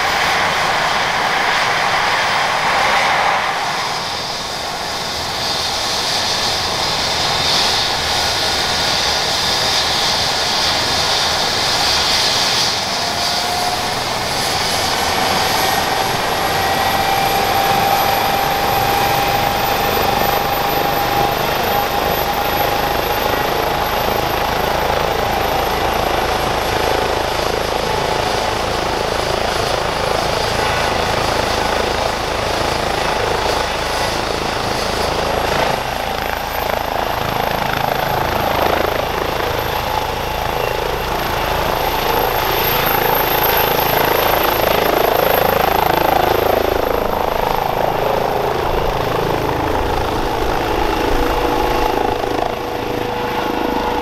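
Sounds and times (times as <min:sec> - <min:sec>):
helicopter rotor noise: 0:00.0 - 0:54.0
high turbine whine: 0:00.0 - 0:54.0.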